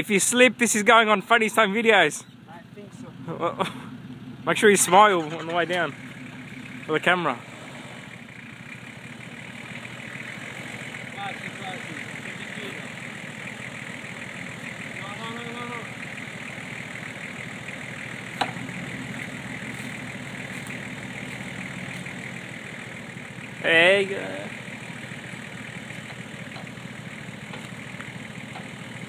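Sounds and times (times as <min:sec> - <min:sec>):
car engine idling: 0:00.0 - 0:29.0
distant voices: 0:00.0 - 0:29.0.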